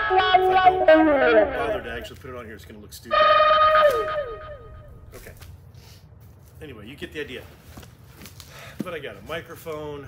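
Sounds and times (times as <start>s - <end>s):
electric guitar note sliding down: 0.0s - 2.1s, 3.1s - 5.1s.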